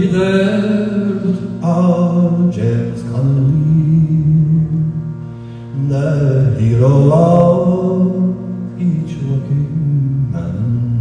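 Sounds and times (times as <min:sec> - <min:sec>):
person singing: 0:00.0 - 0:05.1, 0:05.8 - 0:11.0
slide guitar drone: 0:00.0 - 0:11.0.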